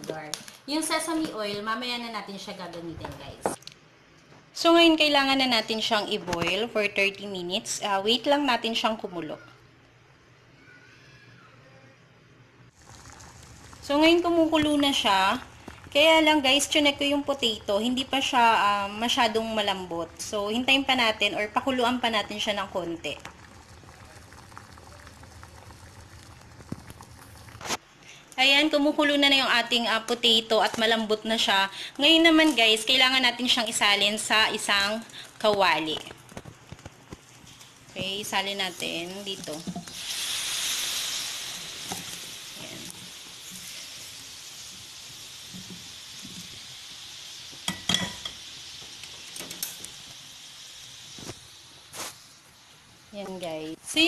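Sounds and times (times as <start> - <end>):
saucepan boiling and bubbling: 12.6 - 54.0.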